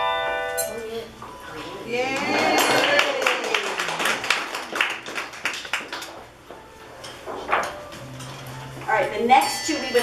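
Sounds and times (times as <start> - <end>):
small audience applauding: 2.0 - 6.4.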